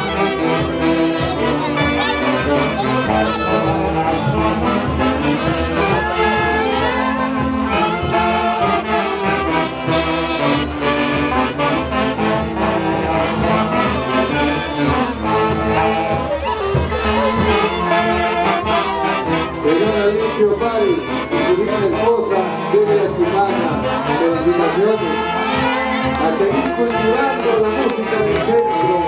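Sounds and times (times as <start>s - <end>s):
saxophone dance band: 0.0s - 29.0s.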